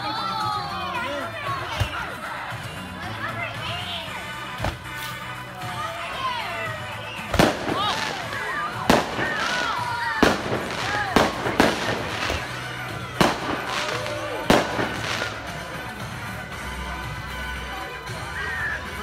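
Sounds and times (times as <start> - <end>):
fireworks bangs: 7.3 - 15.7.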